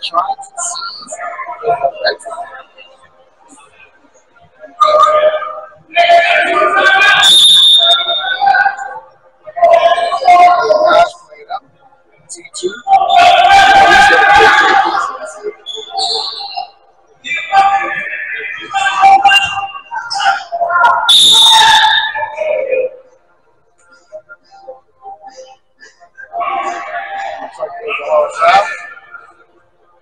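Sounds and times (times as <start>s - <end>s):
voices in a gym: 0.0s - 30.0s
people shouting: 4.8s - 8.8s, 12.9s - 16.3s, 17.3s - 23.0s
referee's whistle: 6.5s - 8.6s, 15.6s - 22.9s
referee's whistle blast: 7.0s - 8.4s, 20.9s - 22.2s.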